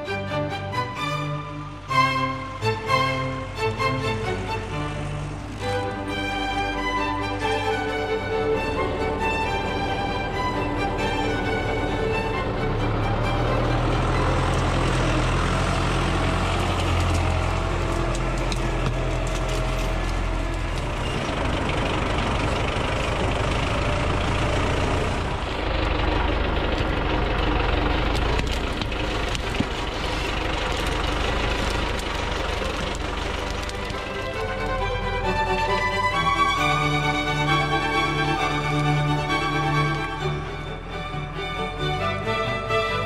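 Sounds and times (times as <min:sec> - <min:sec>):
tractor diesel engine rumbling: 0:00.0 - 0:43.0.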